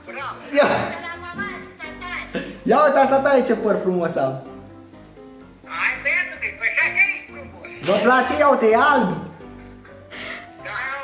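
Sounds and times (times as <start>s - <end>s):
background music with held notes: 0.0s - 11.0s
video call conversation: 0.0s - 11.0s.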